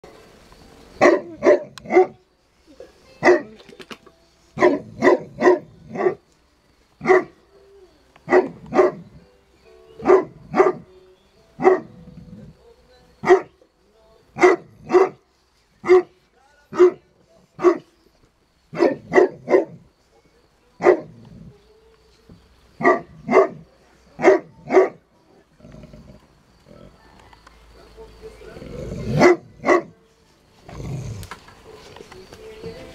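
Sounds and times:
dog barking: 0:01.0 - 0:02.2, 0:03.2 - 0:03.5, 0:04.6 - 0:06.2, 0:07.0 - 0:07.4, 0:08.3 - 0:09.0, 0:10.0 - 0:10.9, 0:11.6 - 0:12.0, 0:13.2 - 0:13.5, 0:14.4 - 0:15.2, 0:15.8 - 0:17.0, 0:17.6 - 0:17.9, 0:18.7 - 0:19.8, 0:20.8 - 0:21.1, 0:22.8 - 0:23.6, 0:24.2 - 0:25.0, 0:29.1 - 0:30.0.

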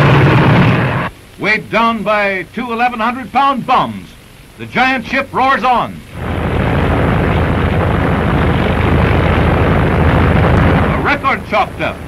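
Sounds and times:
propeller aircraft engine roar: 0:00.0 - 0:01.1, 0:06.1 - 0:12.0.

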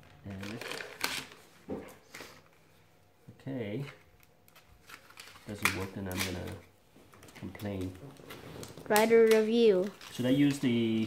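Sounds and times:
plastic packaging rustling: 0:04.5 - 0:11.0.

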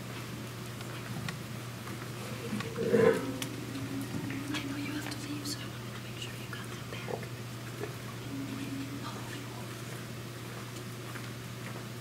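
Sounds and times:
faint small noises: 0:00.0 - 0:12.0
steady low hum: 0:00.0 - 0:12.0.

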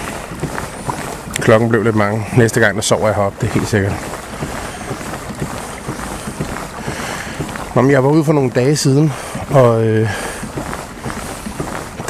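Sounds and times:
water washing along kayak hull: 0:00.0 - 0:12.0
wind noise on microphone: 0:00.0 - 0:12.0.

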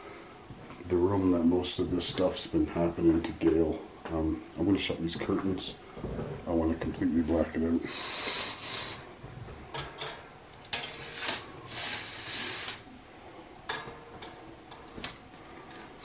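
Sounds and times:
curtains scraping along rod: 0:10.7 - 0:12.8.

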